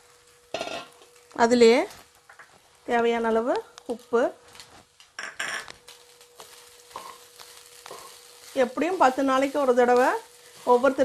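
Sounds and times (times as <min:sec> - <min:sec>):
spatula scraping a frying pan: 0:06.4 - 0:11.0.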